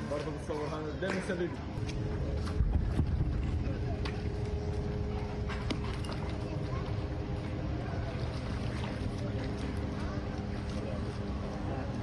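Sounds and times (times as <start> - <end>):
motor hum: 0.0 - 12.0.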